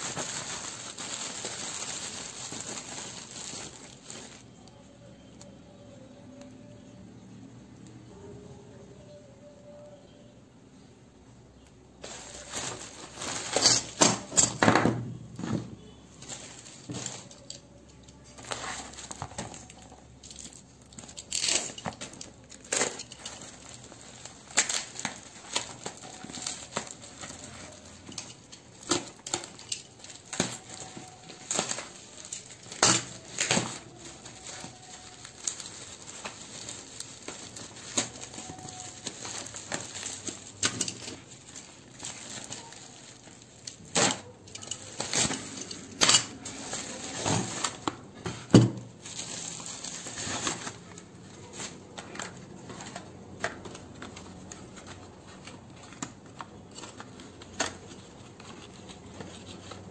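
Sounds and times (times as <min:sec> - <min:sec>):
bubble wrap crinkling: 0:00.0 - 0:06.9, 0:12.0 - 0:15.0, 0:15.8 - 0:59.9.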